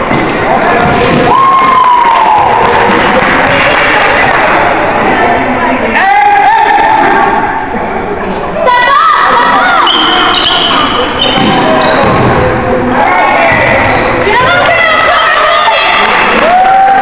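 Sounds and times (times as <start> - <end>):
crowd voices and shouting: 0.0 - 17.0.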